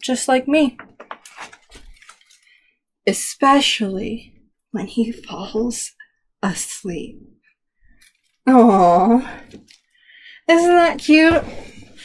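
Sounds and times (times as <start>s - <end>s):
paper rustles and light taps: 0.8s - 2.5s
book page turning: 0.8s - 2.6s, 8.0s - 8.4s.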